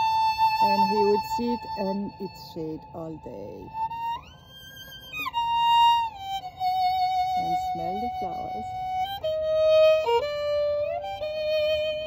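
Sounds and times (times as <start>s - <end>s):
solo violin long bowed notes: 0.0s - 12.0s.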